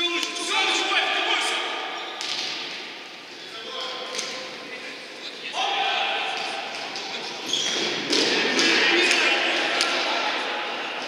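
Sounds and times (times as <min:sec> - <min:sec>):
player shouting in echoing hall: 0:00.0 - 0:02.2, 0:05.4 - 0:07.2, 0:08.2 - 0:11.0.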